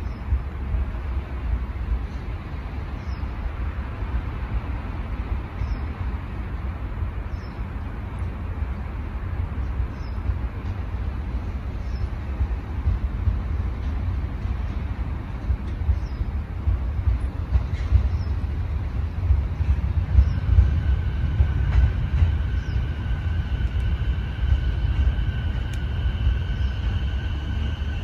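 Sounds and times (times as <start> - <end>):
electric train rumbling slowly: 0.0 - 28.0.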